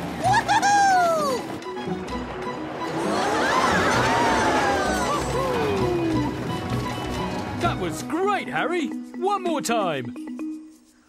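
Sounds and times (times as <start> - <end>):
background music: 0.0 - 11.0
cartoon voices whooping and screaming: 0.2 - 1.4, 3.1 - 6.3.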